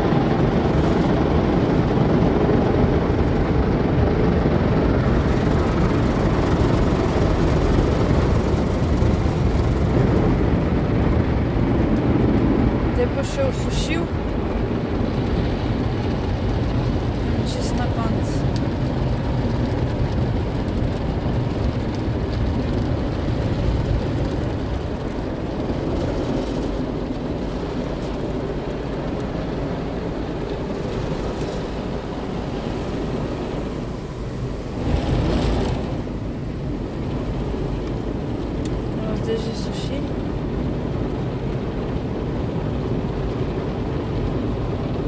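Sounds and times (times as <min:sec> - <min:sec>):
water spray in car wash: 0:05.0 - 0:45.0.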